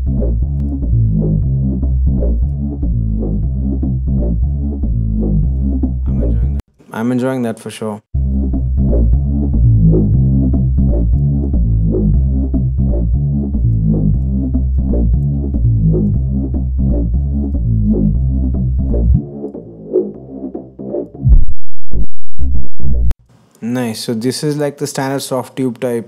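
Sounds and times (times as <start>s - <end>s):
synth bass line: 0.0s - 6.6s, 8.2s - 23.2s
kick drum: 21.2s - 21.7s.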